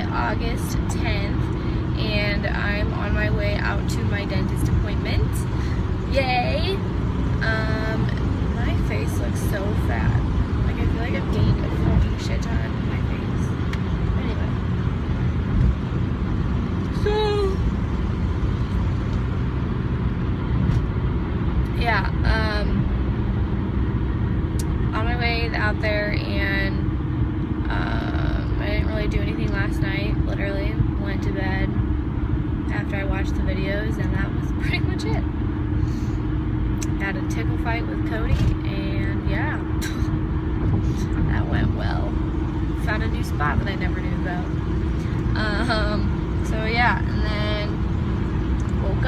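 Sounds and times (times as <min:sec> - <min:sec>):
car road and engine noise: 0:00.0 - 0:49.0.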